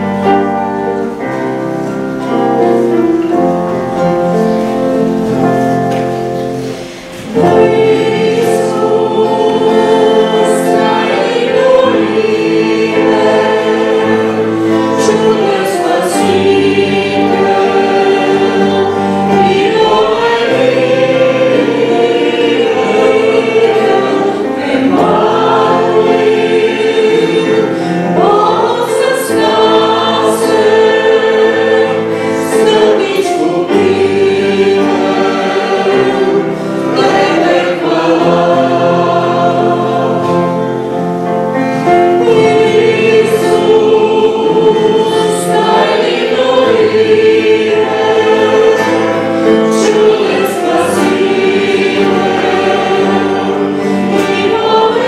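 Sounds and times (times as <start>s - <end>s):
digital piano: 0.0s - 55.0s
group singing a hymn: 0.0s - 55.0s
strummed acoustic guitar: 0.0s - 55.0s.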